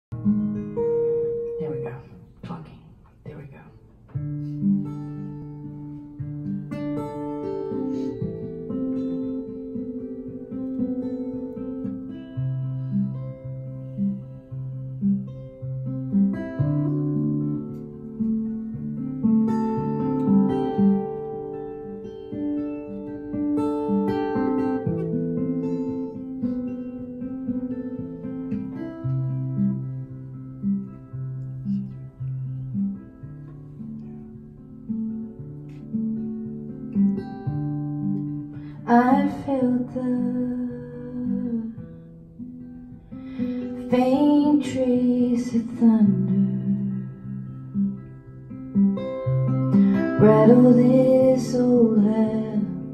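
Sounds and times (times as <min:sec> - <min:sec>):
acoustic guitar playing: 0:00.1 - 0:52.9.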